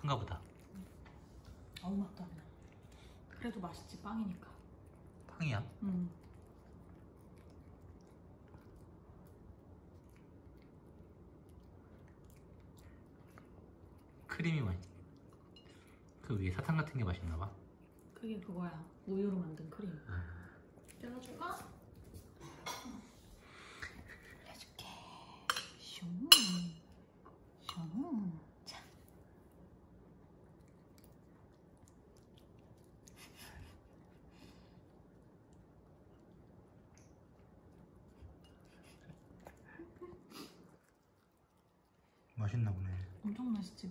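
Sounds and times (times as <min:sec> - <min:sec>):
dog chewing and licking: 0:00.0 - 0:22.4, 0:28.9 - 0:43.9.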